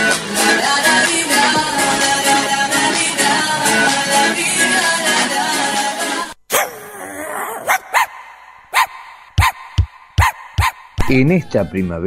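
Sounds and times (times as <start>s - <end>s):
music: 0.0s - 6.4s, 10.6s - 12.0s
dog barking: 6.5s - 6.8s, 7.6s - 10.9s.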